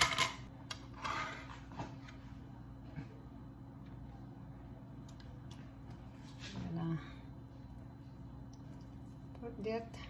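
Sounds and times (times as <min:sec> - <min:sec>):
low steady background hum: 0:00.0 - 0:10.0.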